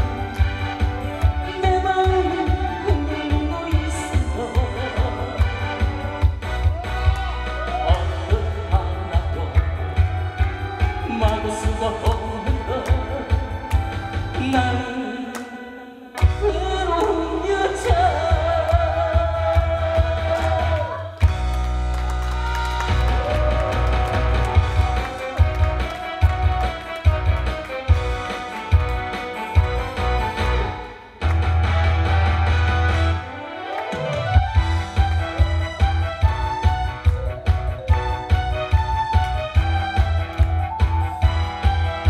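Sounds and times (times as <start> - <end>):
recorded accompaniment with bass beat: 0.0 - 15.1, 16.2 - 42.0
man singing into microphone: 1.5 - 5.8, 7.7 - 10.0, 11.0 - 13.7, 14.3 - 21.0.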